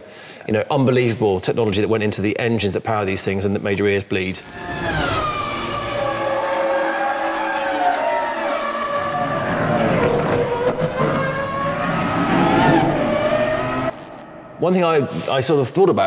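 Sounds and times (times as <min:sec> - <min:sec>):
racing car engines at high revs: 0:04.4 - 0:14.2.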